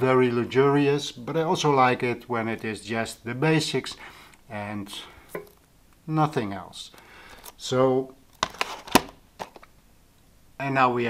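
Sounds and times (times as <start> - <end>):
plastic cases clicking and knocking: 8.3 - 9.7.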